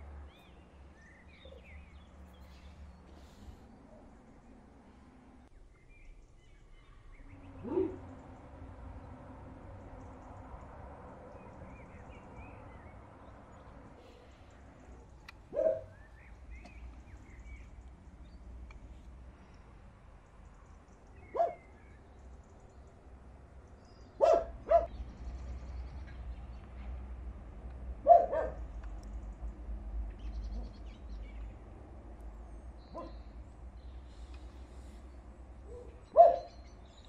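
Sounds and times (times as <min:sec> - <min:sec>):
faint birds chirping: 0:00.0 - 0:37.0
dog barking: 0:07.6 - 0:08.1, 0:15.5 - 0:16.0, 0:21.3 - 0:21.7, 0:24.2 - 0:25.0, 0:28.0 - 0:28.7, 0:32.9 - 0:33.2, 0:35.7 - 0:36.6.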